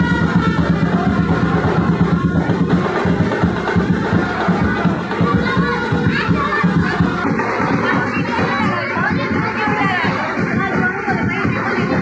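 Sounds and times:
children's voices chattering: 0.0s - 12.0s
music with a beat: 0.0s - 12.0s.

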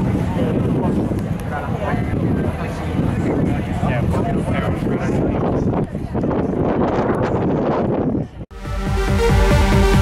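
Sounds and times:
wind buffeting microphone: 0.0s - 8.5s.

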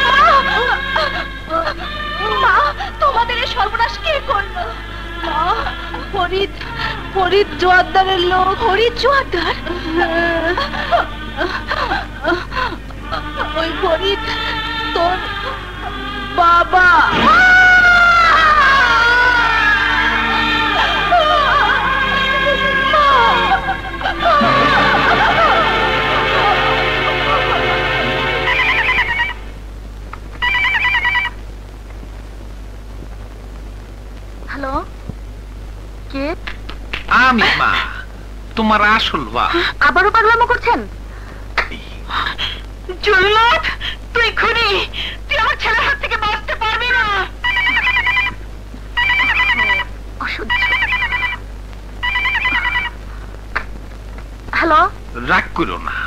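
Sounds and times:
background music: 0.0s - 29.6s
telephone ringing: 24.0s - 29.5s, 30.4s - 31.4s, 47.4s - 48.4s, 49.0s - 49.9s, 50.5s - 51.4s, 52.0s - 53.0s.

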